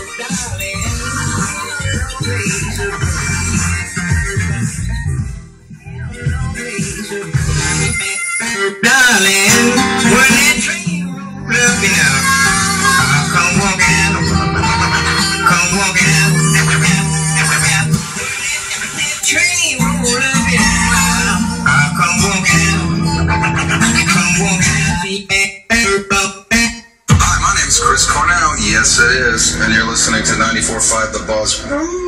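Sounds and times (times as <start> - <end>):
song with guitar from radio: 0.0 - 5.2, 5.8 - 25.2.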